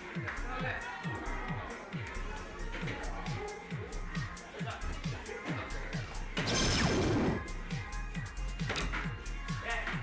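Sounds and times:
background music with steady beat: 0:00.0 - 0:10.0
dartboard crashing sweep effect: 0:06.4 - 0:07.5.

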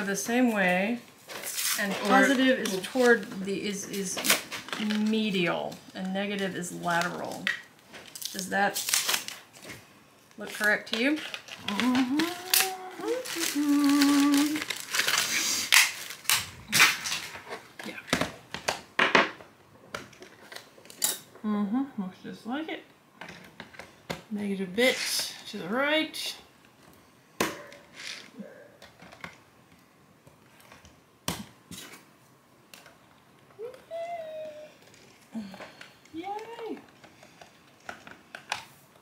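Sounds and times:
plastic bag crinkling: 0:01.3 - 0:09.8, 0:10.4 - 0:18.0.

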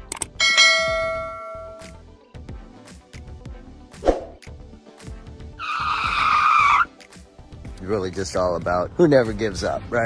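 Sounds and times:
background music with soft beat: 0:00.0 - 0:10.0
notification bell ding: 0:00.4 - 0:01.9.

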